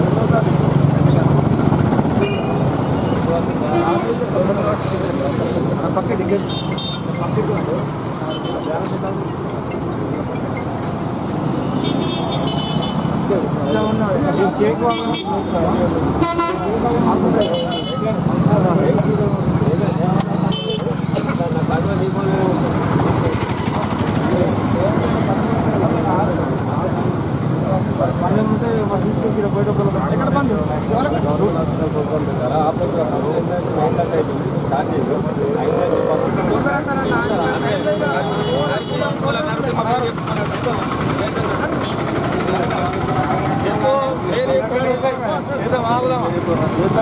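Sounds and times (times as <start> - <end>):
men talking: 0.0 - 47.0
road traffic rumble: 0.0 - 47.0.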